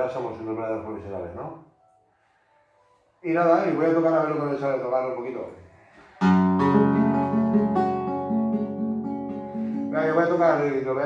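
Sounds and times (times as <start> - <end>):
nylon-string guitar plucking: 6.2 - 10.0.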